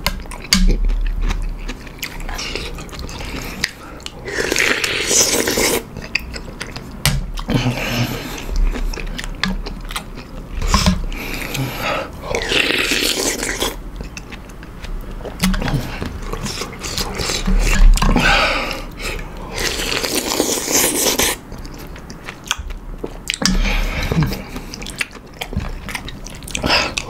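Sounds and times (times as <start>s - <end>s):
close chewing with mouth clicks: 0.0s - 27.0s.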